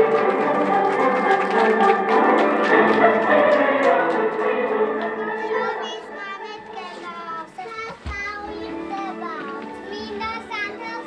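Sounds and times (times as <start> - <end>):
children singing: 0.0 - 7.4
music: 0.0 - 11.0.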